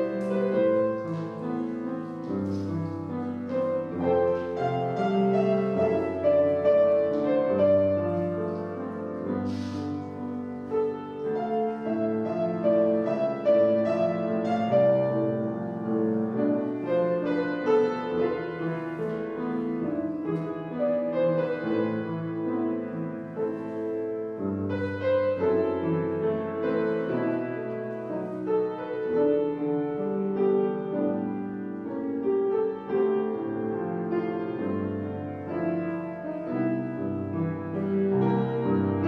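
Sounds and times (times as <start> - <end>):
slow piano piece: 0.0 - 39.0.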